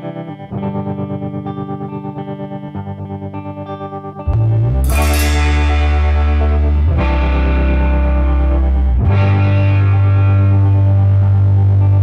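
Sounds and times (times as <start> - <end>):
distorted electric guitar chords: 0.0 - 12.0.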